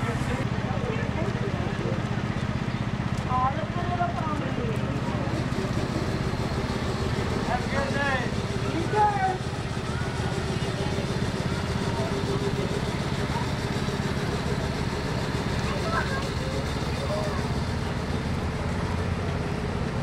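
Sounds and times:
faint voices: 0.0s - 20.0s
vehicle engine idling: 0.0s - 20.0s.

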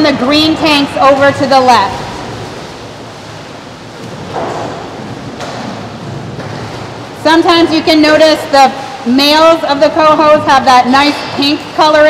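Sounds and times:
water rushing and splashing: 0.0s - 12.0s.

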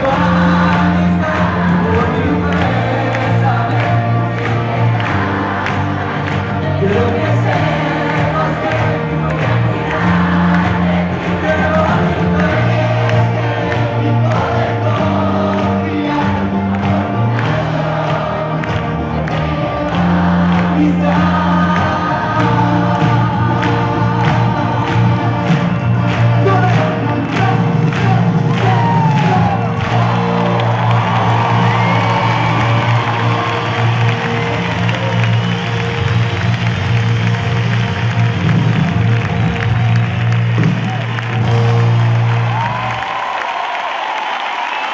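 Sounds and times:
crowd singing along: 0.0s - 26.6s
live band music: 0.0s - 43.0s
percussion: 0.0s - 44.5s
crowd cheering: 0.0s - 44.9s.

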